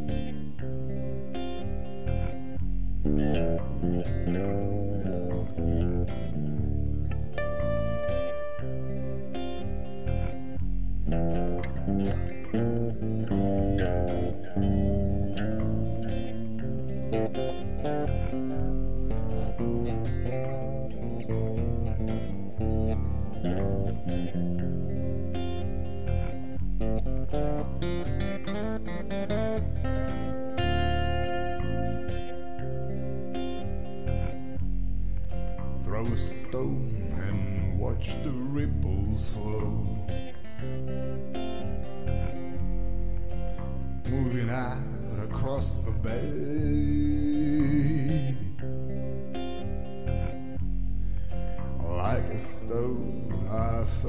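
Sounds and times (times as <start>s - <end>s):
electric guitar melody: 0.0s - 54.0s.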